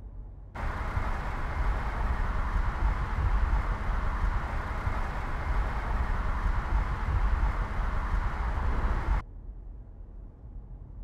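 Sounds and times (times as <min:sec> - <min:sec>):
faint low hum: 0:00.0 - 0:11.0
car engine and tyre noise: 0:00.6 - 0:09.2.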